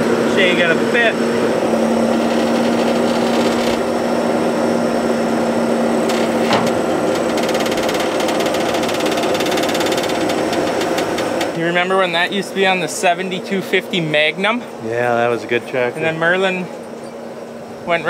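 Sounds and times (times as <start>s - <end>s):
engine running: 0.0s - 18.0s
corn sheller rattling: 2.2s - 3.8s, 6.2s - 11.6s.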